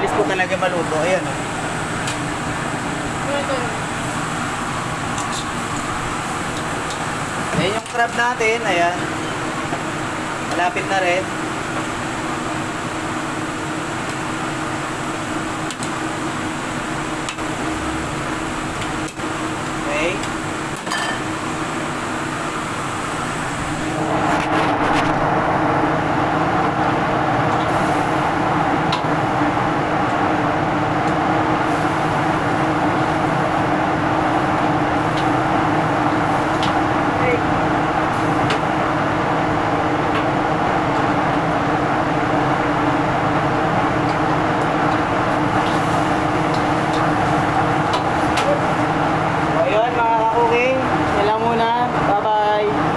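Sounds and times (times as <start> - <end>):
fan hum: 0.0 - 52.9
gas wok burner roaring: 0.0 - 52.9.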